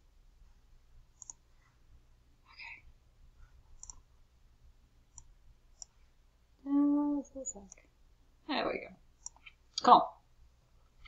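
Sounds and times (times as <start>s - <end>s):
faint computer mouse clicks: 1.2s - 1.4s, 3.8s - 4.0s, 9.2s - 9.9s.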